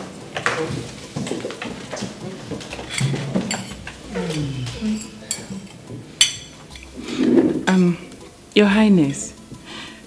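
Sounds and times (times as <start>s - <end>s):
tableware clinking: 0.0s - 8.3s
man humming: 4.0s - 5.6s.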